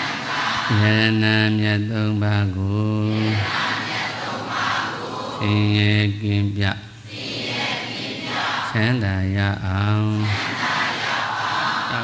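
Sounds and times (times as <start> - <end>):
men chanting in monotone: 0.0 - 12.0
murmur of many voices: 2.8 - 12.0.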